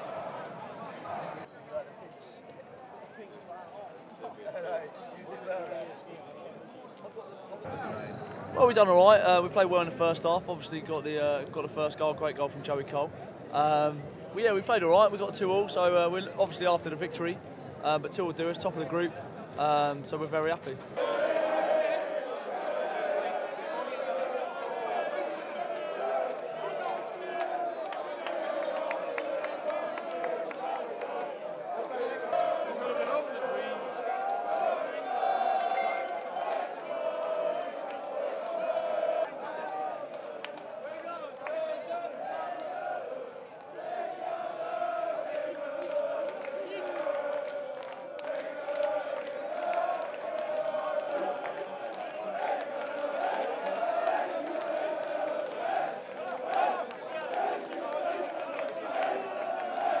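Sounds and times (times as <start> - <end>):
crowd chanting and shouting: 0.0 - 1.7, 7.6 - 60.0.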